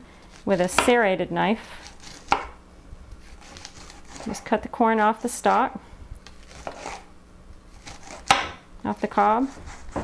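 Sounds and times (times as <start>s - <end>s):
knife scraping corn cob: 1.7s - 2.4s, 3.2s - 4.5s, 6.2s - 7.1s, 7.7s - 8.3s.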